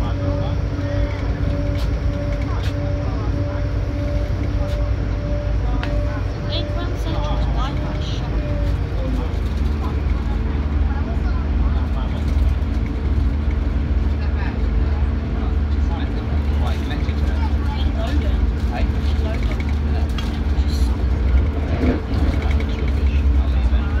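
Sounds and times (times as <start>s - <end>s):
train rumbling on track: 0.0s - 24.0s.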